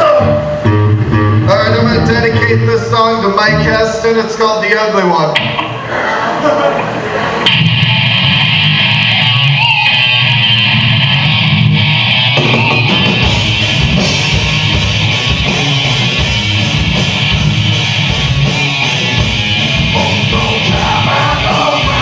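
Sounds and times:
electric guitar: 0:00.0 - 0:04.1, 0:06.8 - 0:22.0
deep low end bass: 0:10.3 - 0:22.0
drums with cymbals: 0:12.4 - 0:22.0.

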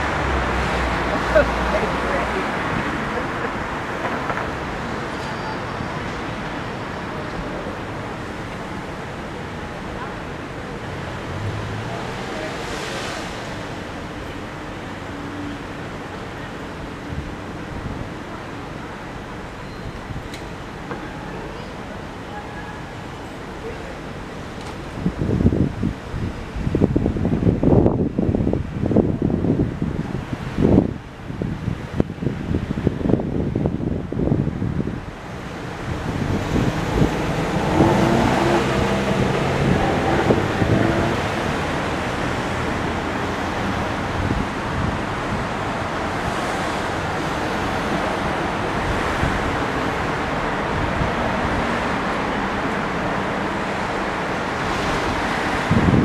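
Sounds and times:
city street traffic roar: 0:00.0 - 0:56.0
wind on microphone: 0:24.9 - 0:52.2, 0:53.6 - 0:56.0
vehicle passing: 0:35.9 - 0:44.4.

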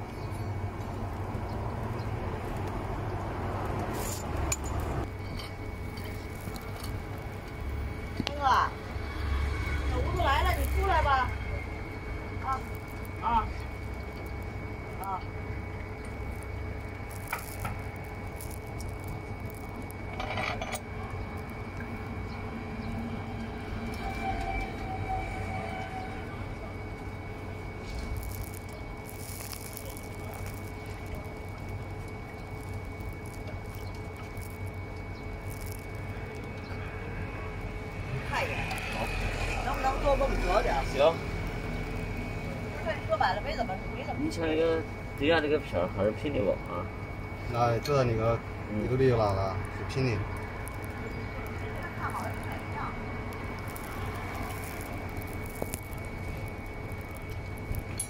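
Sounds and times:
low rumble and hum: 0:00.0 - 0:58.0
voices: 0:05.8 - 0:58.0.

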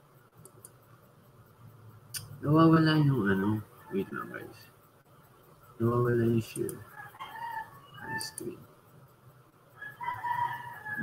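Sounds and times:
rooster crowing: 0:03.7 - 0:04.7, 0:06.7 - 0:08.6, 0:09.7 - 0:11.0.

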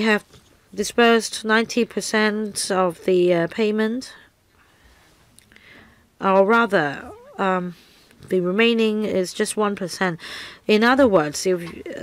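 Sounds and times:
soft breath: 0:04.6 - 0:06.1, 0:10.2 - 0:10.6.

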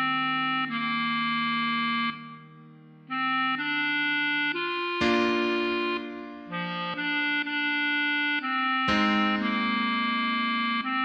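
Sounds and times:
slow clarinet melody: 0:00.0 - 0:11.0.

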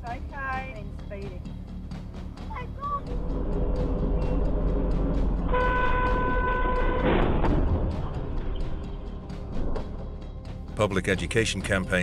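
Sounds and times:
car engine and road rumble: 0:02.4 - 0:10.6
car horn: 0:05.4 - 0:07.5.

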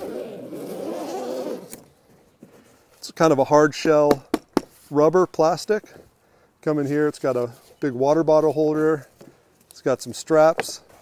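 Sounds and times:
zipper rasping open: 0:00.0 - 0:01.9.

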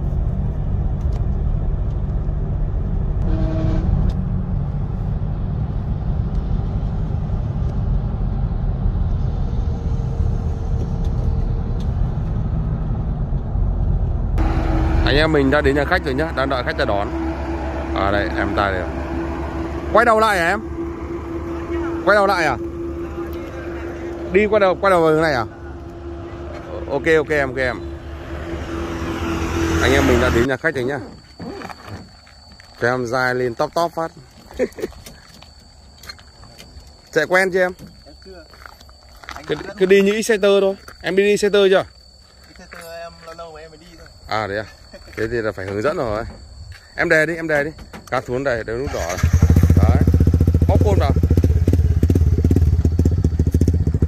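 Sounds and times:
vehicle engine and road noise: 0:00.0 - 0:54.0
motorcycle engine idling: 0:48.9 - 0:54.0.

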